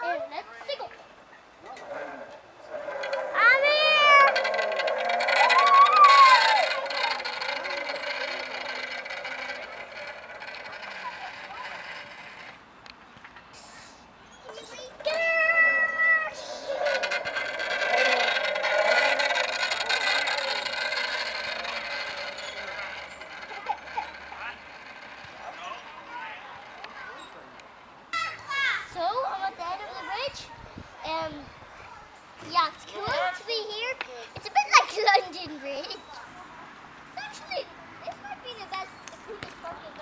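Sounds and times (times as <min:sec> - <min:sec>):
steady high squeal: 0:01.8 - 0:12.6, 0:13.6 - 0:27.5.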